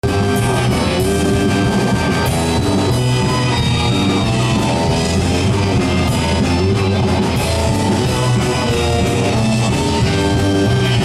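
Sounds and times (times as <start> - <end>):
drum kit: 0.0 - 11.0
electric guitar: 0.0 - 11.0
punk band playing live: 0.0 - 11.0.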